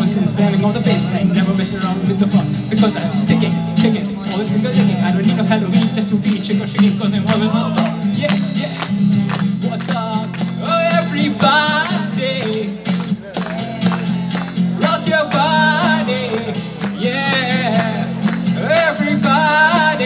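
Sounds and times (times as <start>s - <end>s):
man singing: 0.0s - 20.0s
strummed acoustic guitar: 0.0s - 20.0s.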